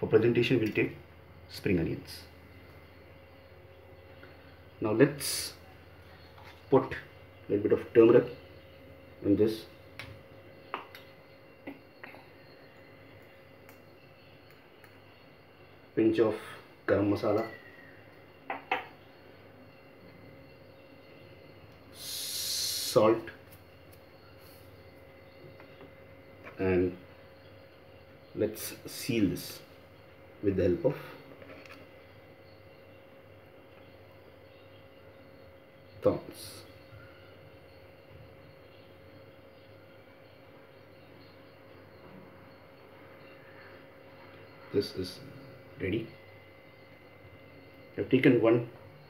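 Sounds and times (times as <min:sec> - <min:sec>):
thin constant hum: 0:00.0 - 0:49.0.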